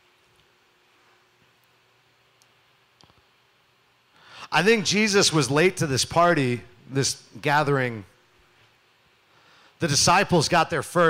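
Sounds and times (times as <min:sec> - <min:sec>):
faint clicks: 0:02.4 - 0:03.3.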